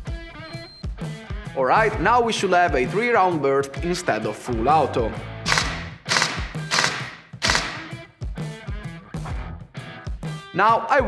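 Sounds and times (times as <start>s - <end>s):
guitar background music: 0.0s - 11.0s
airsoft gun firing bursts: 5.5s - 8.0s.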